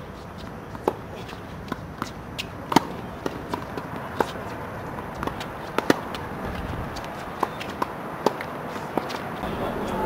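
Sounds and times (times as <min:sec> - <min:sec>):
tennis ball bouncing on court: 0:00.4 - 0:09.5
racket striking tennis ball: 0:01.7 - 0:09.2.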